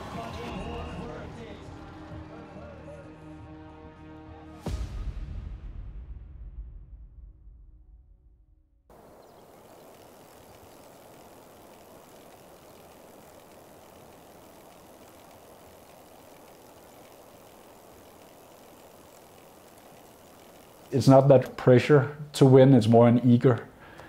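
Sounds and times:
music: 0:00.0 - 0:08.6
faint rushing outdoor ambience: 0:08.9 - 0:24.0.

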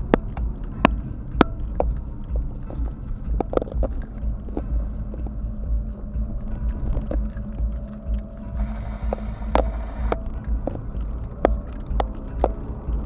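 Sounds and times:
interior clicks and rattles: 0:00.0 - 0:13.0
road and engine rumble: 0:00.0 - 0:13.0.

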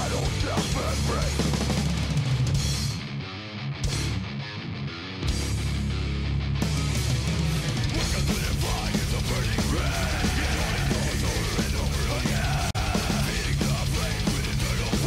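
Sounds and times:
heavy metal music: 0:00.0 - 0:15.0.

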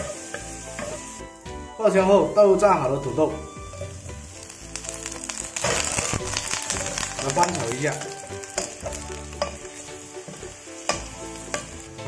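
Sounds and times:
potatoes sizzling in hot oil: 0:00.0 - 0:12.0
wooden spatula stir-frying: 0:00.0 - 0:12.0
spatula knocking against pan: 0:10.3 - 0:11.7.

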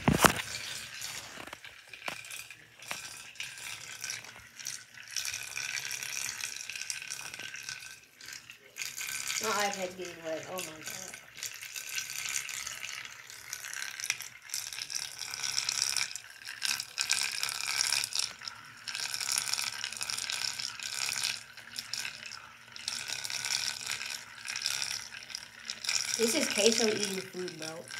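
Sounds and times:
water churning and splashing: 0:19.8 - 0:27.9.

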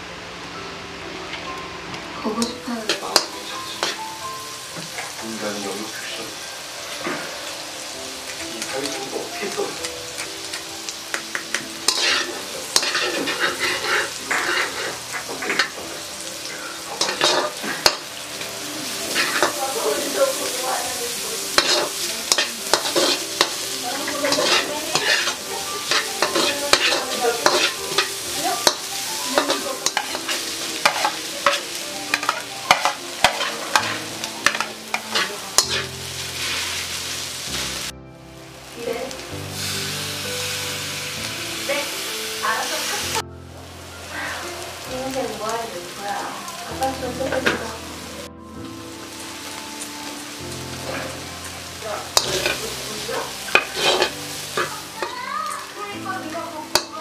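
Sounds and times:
onion and garlic sizzling in oil: 0:00.0 - 0:57.0
metal spatula scraping a wok: 0:11.8 - 0:18.1, 0:19.0 - 0:19.6, 0:21.5 - 0:37.7, 0:50.8 - 0:51.3, 0:52.1 - 0:55.1.

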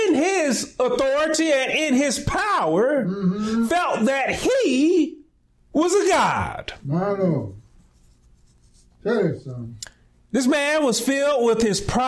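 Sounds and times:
man speaking: 0:00.0 - 0:07.7, 0:09.0 - 0:12.0.

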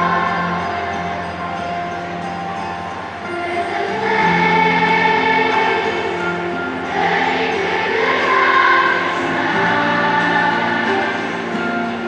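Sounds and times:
massed children's choir singing: 0:00.0 - 0:12.0.

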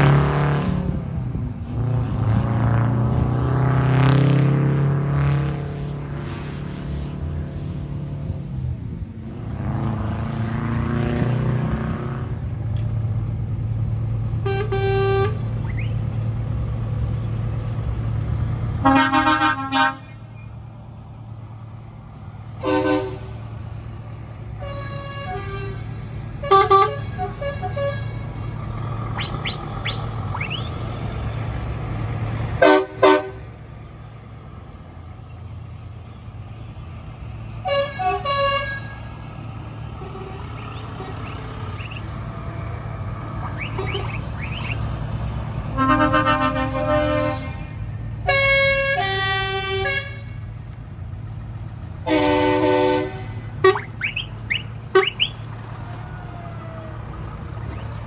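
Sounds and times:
heavy trucks driving past: 0:00.0 - 0:58.0
truck horn blasts: 0:14.4 - 0:16.0, 0:18.8 - 0:20.4, 0:22.6 - 0:23.4, 0:24.5 - 0:28.4, 0:32.5 - 0:33.6, 0:37.6 - 0:39.2, 0:39.9 - 0:42.0, 0:43.4 - 0:44.8, 0:45.6 - 0:50.6, 0:52.0 - 0:55.4.

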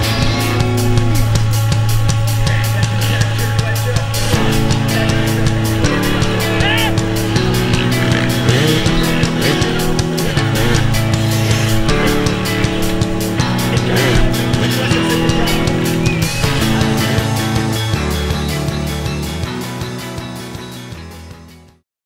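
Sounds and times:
motorcycle engine revving: 0:00.0 - 0:21.1
rock music with drum beat: 0:00.0 - 0:21.6.

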